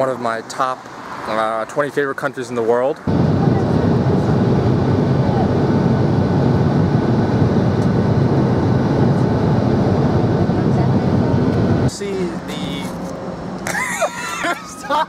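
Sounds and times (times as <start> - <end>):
airliner cabin engine rumble: 3.1 - 15.0.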